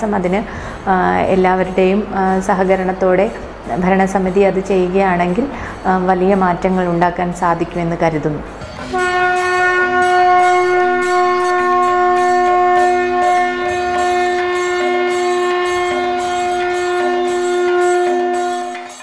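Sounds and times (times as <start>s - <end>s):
pulsing low note: 5.8s - 18.8s
held wind instrument note: 8.4s - 19.0s.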